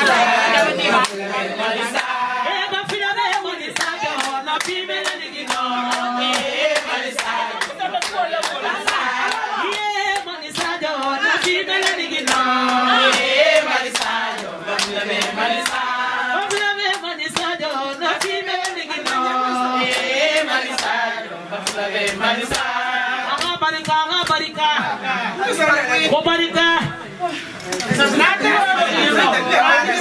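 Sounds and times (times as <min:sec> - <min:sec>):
rhythmic hand clapping: 0:00.0 - 0:24.9
group of people singing: 0:00.0 - 0:27.0, 0:27.9 - 0:30.0.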